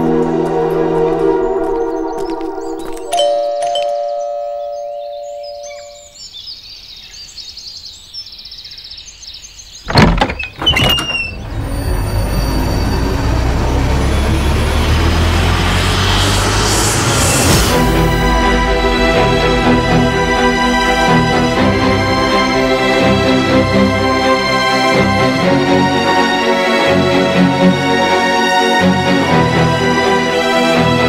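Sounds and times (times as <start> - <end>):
rumbling horror film score: 0.0 - 3.2, 9.9 - 31.0
two-tone doorbell chime: 3.1 - 6.2.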